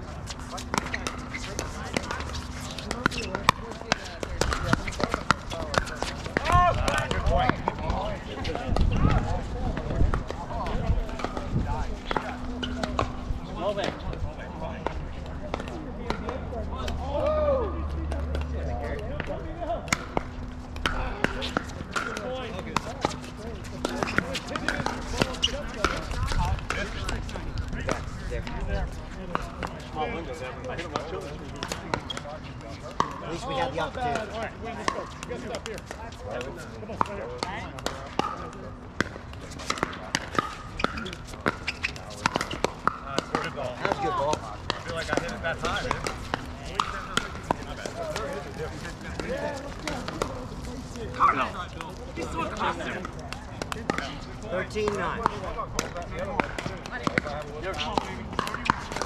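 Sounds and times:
murmur of voices: 0.0 - 59.0
paddles striking plastic balls: 0.4 - 8.1, 34.2 - 59.0.

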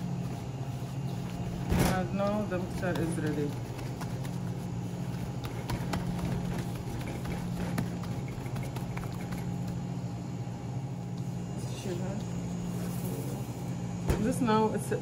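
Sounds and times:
hands squishing wet mixture: 0.0 - 9.9
steady low hum: 0.0 - 15.0.

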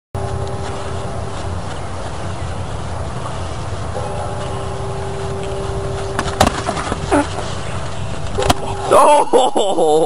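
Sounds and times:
faint steady hum: 0.2 - 10.0
outdoor rumble and hiss: 0.2 - 10.0.

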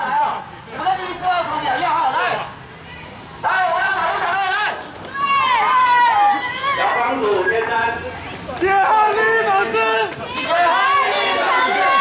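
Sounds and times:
crowd of protesters shouting: 0.0 - 12.0
high-pitched shouts: 1.8 - 7.5, 8.6 - 12.0.

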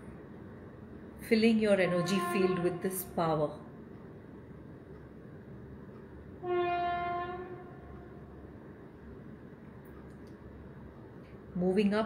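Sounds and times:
horn blast: 1.8 - 3.0, 6.4 - 8.2.

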